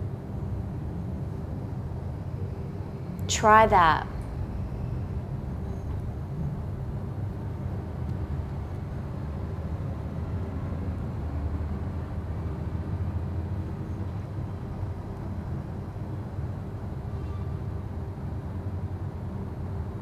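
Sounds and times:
low room noise rumble: 0.0s - 20.0s.

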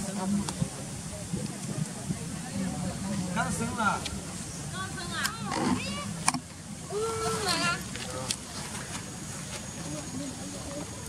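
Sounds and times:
low background murmur: 0.0s - 11.0s.

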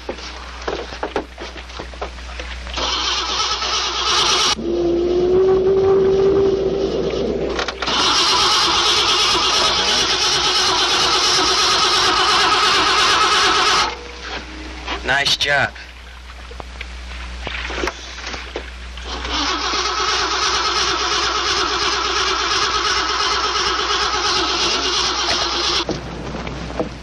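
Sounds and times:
boat engine cranking: 2.7s - 4.6s, 6.8s - 14.4s, 19.0s - 25.9s.

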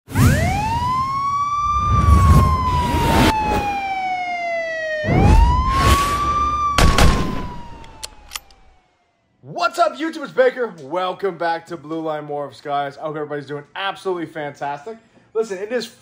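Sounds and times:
siren wail: 0.1s - 9.4s
whooshing hits: 5.0s - 7.9s
deep booms: 6.7s - 7.7s.

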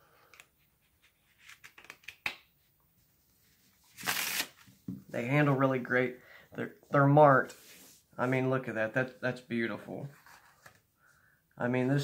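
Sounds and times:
playing cards riffle shuffle: 4.0s - 4.7s.

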